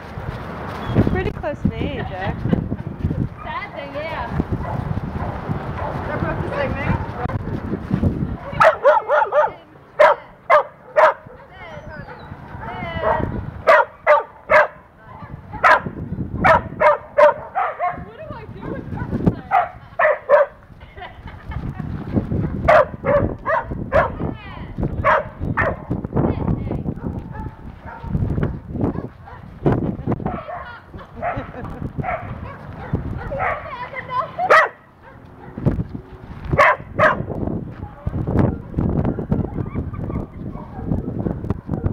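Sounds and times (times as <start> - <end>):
dogs barking and yipping: 3.3 - 3.8, 4.6 - 7.4, 8.4 - 20.6, 22.3 - 24.3, 25.0 - 26.0, 26.9 - 35.8, 36.4 - 41.9.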